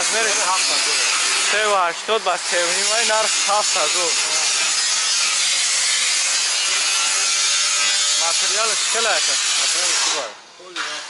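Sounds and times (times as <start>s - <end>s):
harsh hissing noise: 0.0s - 11.0s.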